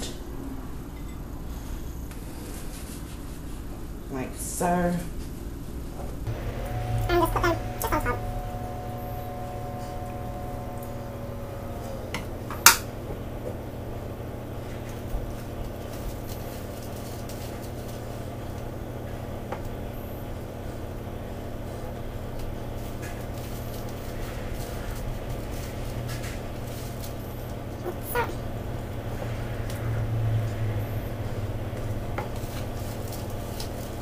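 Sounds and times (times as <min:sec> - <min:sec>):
steady low hum: 0:05.1 - 0:34.0.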